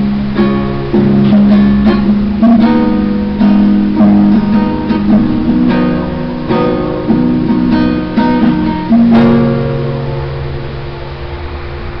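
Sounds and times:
classical guitar chord ringing: 0.0s - 12.0s
steady hiss: 0.0s - 12.0s.

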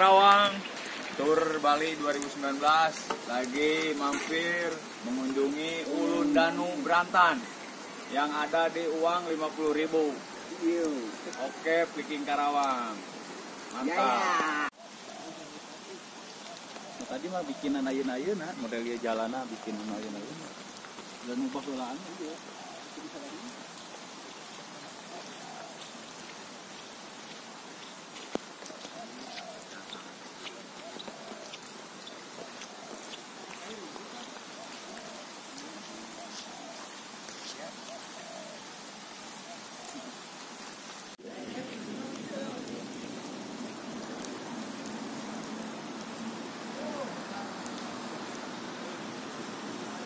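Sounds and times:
steady rain falling: 0.0s - 50.0s
faint voices: 41.2s - 43.3s, 46.7s - 47.8s.

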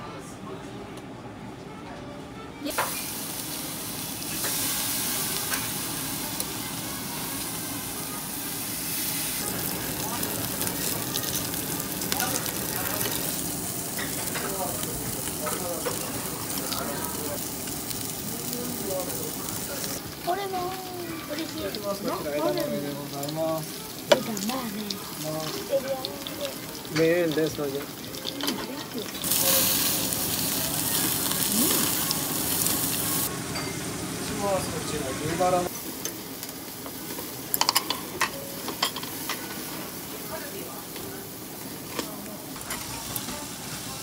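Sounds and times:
meat sizzling on a grill: 2.7s - 44.0s.

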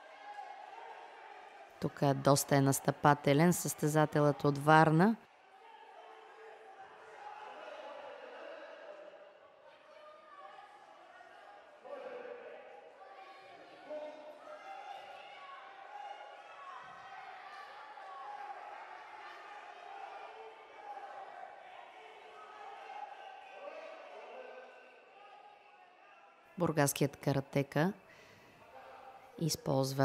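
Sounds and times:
voices shouting: 5.4s - 26.4s.

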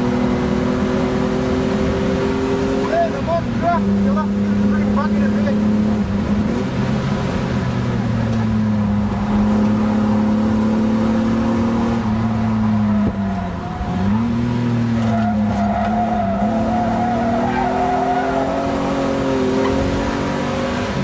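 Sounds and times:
car engine: 0.0s - 21.0s
tyre squeal: 15.0s - 19.8s.

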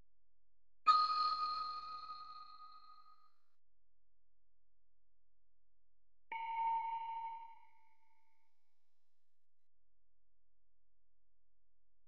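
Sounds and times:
bell-like chime: 0.9s - 3.0s.

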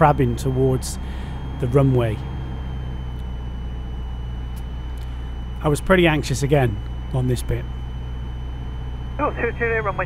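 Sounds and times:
faint high whine: 0.0s - 10.0s
piston engine and propeller drone: 0.0s - 10.0s.

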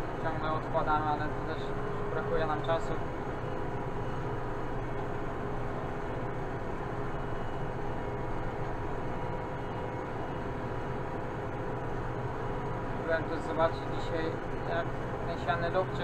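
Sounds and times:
tractor diesel engine droning: 0.0s - 16.0s.

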